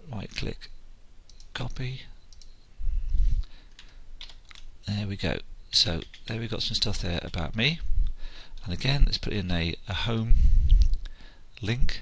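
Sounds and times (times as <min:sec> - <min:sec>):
keyboard clicks: 0:02.3 - 0:02.6, 0:03.7 - 0:04.7, 0:06.0 - 0:06.3.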